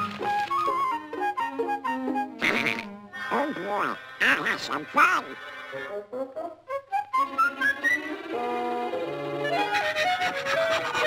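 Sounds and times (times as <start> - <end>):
squawky quacking cartoon voice: 2.4 - 5.4.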